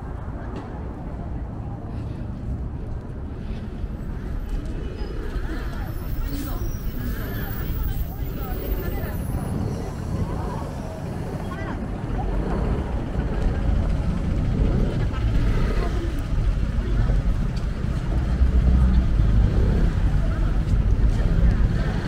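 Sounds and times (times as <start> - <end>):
passers-by talking: 0.0 - 22.0
road traffic and buses rumbling: 0.0 - 22.0.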